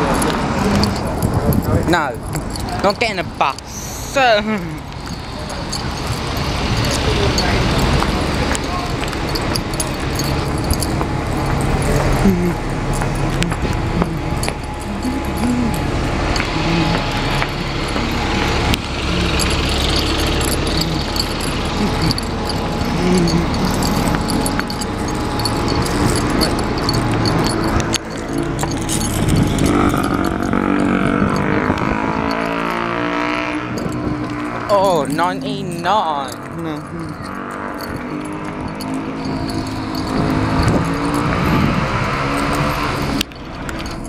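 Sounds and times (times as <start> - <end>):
bus engines passing: 0.0 - 44.0
indistinct voices: 0.0 - 44.0
person laughing: 12.2 - 12.6.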